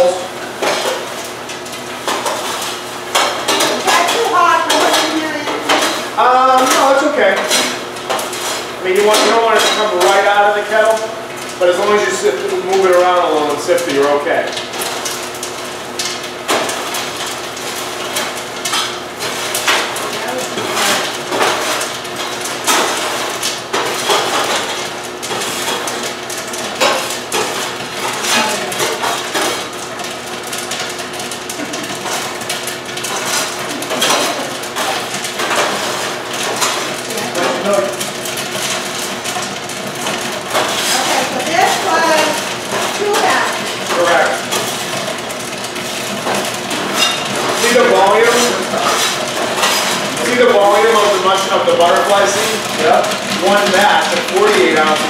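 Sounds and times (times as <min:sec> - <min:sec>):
metal scoop clattering popcorn: 0:00.0 - 0:55.0.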